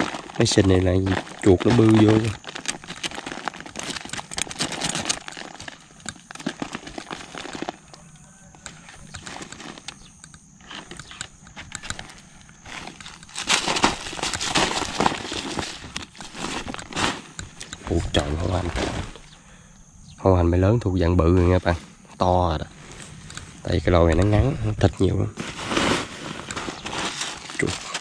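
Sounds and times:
plastic sack rustling: 0.0 - 8.1, 8.7 - 19.3, 21.4 - 28.0.

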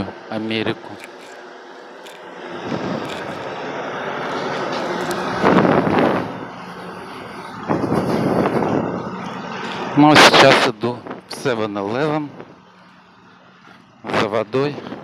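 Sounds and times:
vehicles passing close by: 0.0 - 15.0.

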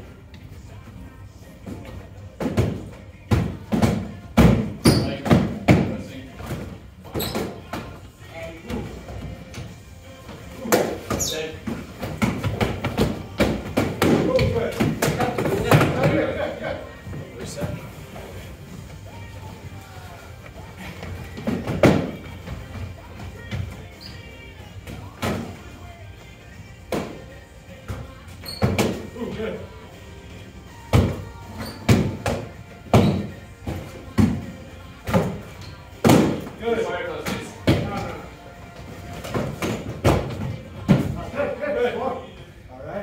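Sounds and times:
background music: 0.0 - 43.0.

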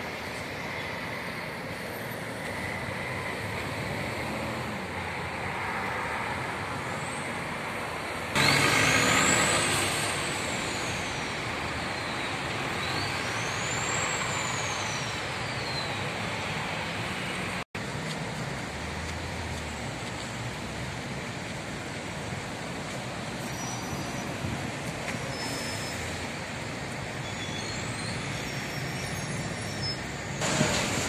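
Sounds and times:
city road traffic: 0.0 - 31.0.

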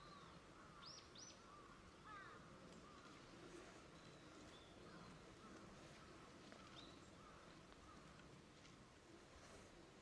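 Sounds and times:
distant lower bird calls: 0.0 - 8.2.

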